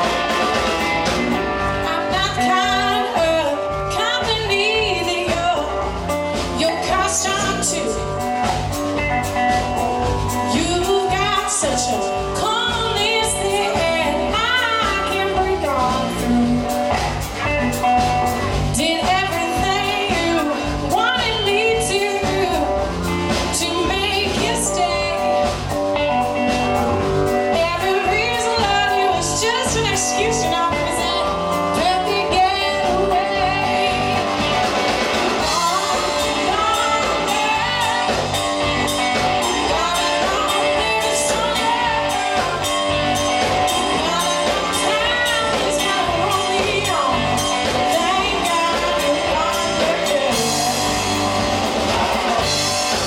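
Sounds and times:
blues-rock band playing: 0.0 - 53.0
woman singing lead: 0.0 - 53.0.

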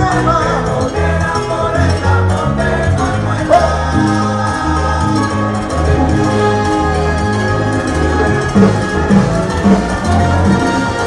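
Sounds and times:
salsa band with strings: 0.0 - 11.0
steady percussion beat: 2.8 - 11.0.

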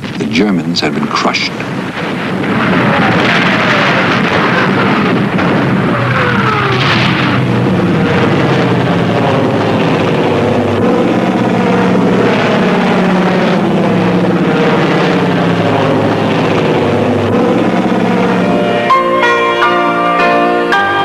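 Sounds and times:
heavy engines droning: 0.0 - 21.0.

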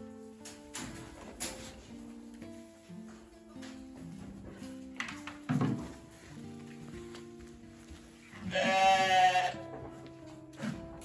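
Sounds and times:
background music: 0.0 - 11.0
sheep bleating: 8.4 - 9.7.

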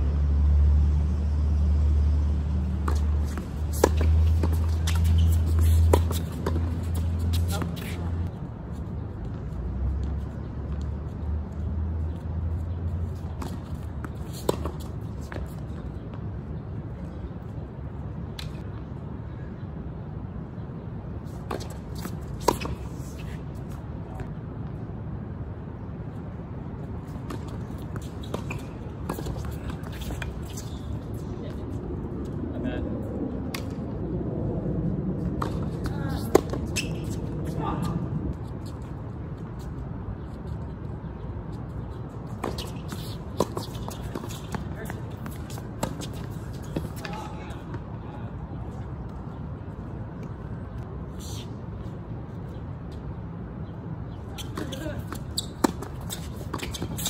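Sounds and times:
tennis balls struck by rackets: 2.6 - 8.1, 54.4 - 57.0.

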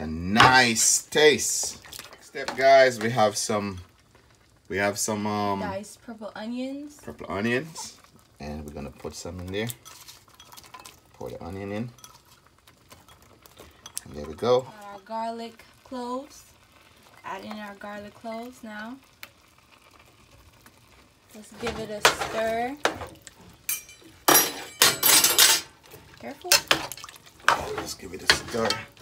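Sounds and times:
metal spoon scraping metal pot: 9.7 - 11.0.

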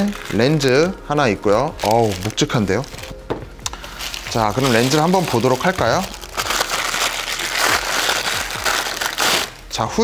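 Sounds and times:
plastic wrapping crinkling: 0.0 - 9.8.

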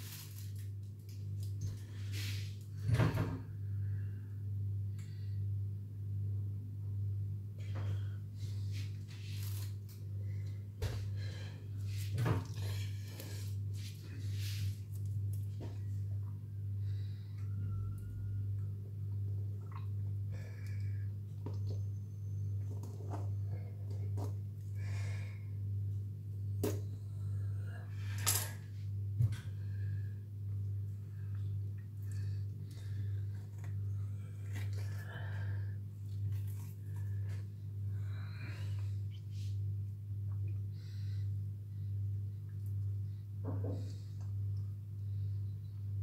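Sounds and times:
low electrical hum: 0.0 - 46.0.

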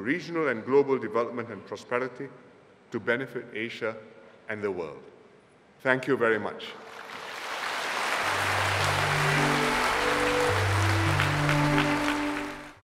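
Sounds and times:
audience applauding: 6.9 - 12.8
slow music of sustained chords: 8.2 - 12.8.

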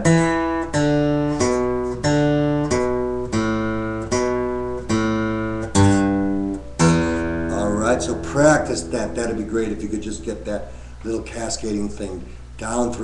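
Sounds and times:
acoustic guitar plucked notes: 0.0 - 10.5.

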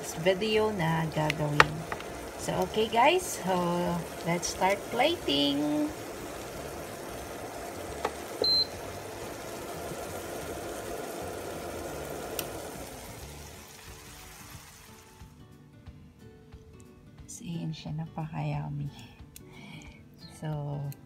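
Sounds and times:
sauce simmering and sizzling: 0.0 - 15.3
short high beep: 8.4 - 8.8.

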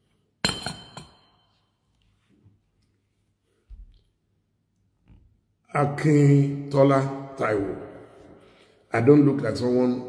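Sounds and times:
ceramic mug clinking on table: 0.4 - 1.4.

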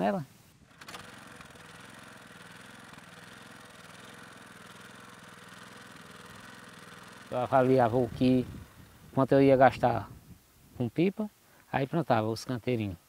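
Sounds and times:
portable water pump engine running: 0.6 - 9.2.

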